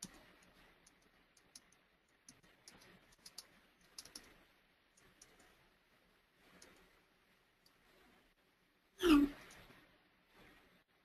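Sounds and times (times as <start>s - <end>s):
computer keyboard clicks: 0.0s - 4.4s.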